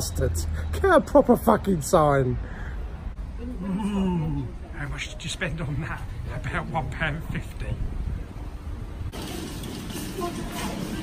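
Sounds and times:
supermarket entrance background noise: 0:03.0 - 0:11.0
wind buffeting microphone: 0:06.2 - 0:09.2.

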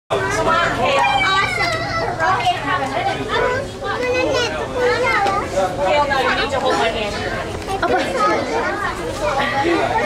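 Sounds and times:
children chattering: 0:00.1 - 0:10.0.

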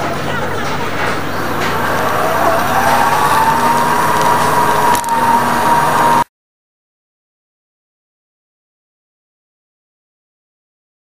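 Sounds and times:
busy store background noise: 0:00.0 - 0:05.9
rising whine: 0:01.3 - 0:06.3.

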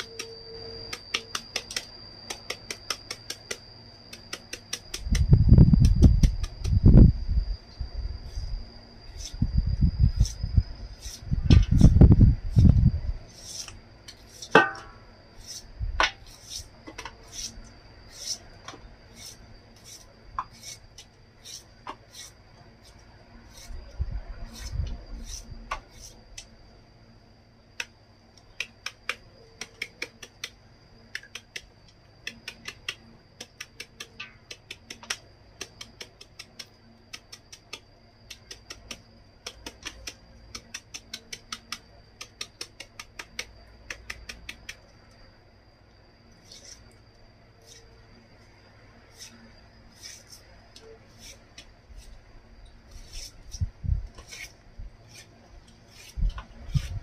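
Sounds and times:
faint steady high tone: 0:00.0 - 0:04.3, 0:50.4 - 0:51.2
knife cutting bamboo shoot: 0:00.0 - 0:06.8, 0:13.3 - 0:18.4, 0:19.1 - 0:23.8, 0:27.8 - 0:44.8, 0:46.4 - 0:46.9, 0:49.1 - 0:52.2, 0:52.9 - 0:57.0.

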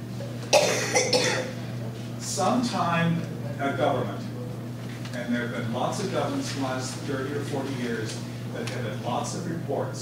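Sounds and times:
low electrical hum: 0:00.0 - 0:10.0
person coughing: 0:00.5 - 0:01.6.

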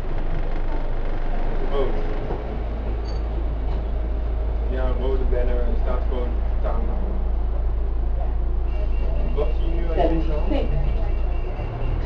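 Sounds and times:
bus engine droning: 0:00.0 - 0:12.0
passenger speaking: 0:09.3 - 0:11.1.

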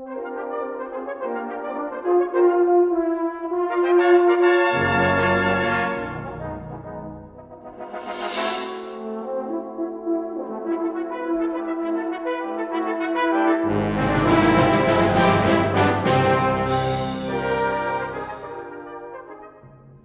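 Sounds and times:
brass band playing: 0:03.1 - 0:06.8, 0:07.7 - 0:19.6
high shimmering swell: 0:07.7 - 0:09.4, 0:16.7 - 0:18.9.

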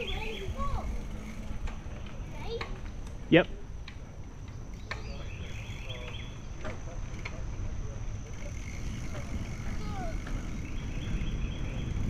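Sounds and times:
bicycle tyres rolling on trail: 0:00.0 - 0:12.0
wind rumbling on microphone: 0:00.0 - 0:12.0.

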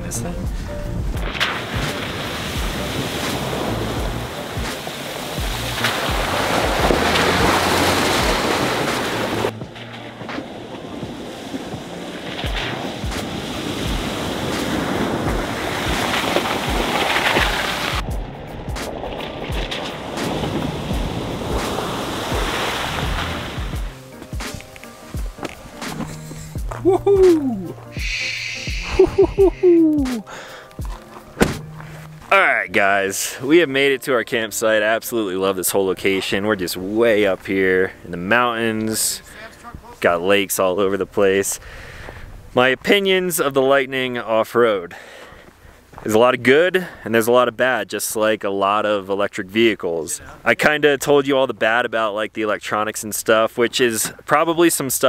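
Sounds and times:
background music: 0:00.0 - 0:40.4
water rushing and splashing: 0:00.5 - 0:33.6.

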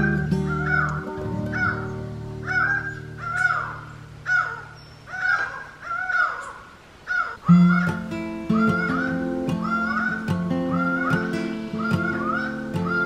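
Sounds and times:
background music with held notes: 0:00.0 - 0:04.7, 0:07.5 - 0:13.0
bird calling harshly: 0:00.0 - 0:13.0.

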